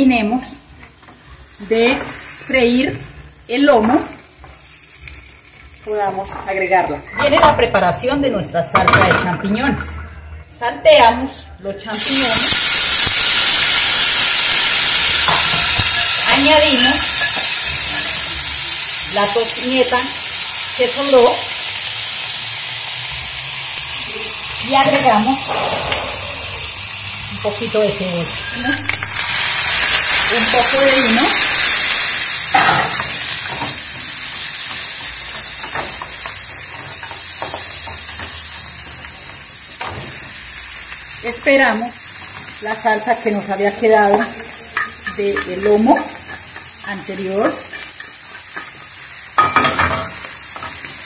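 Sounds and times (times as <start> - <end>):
mushrooms sizzling in a frying pan: 0.0 - 7.1, 11.9 - 51.0.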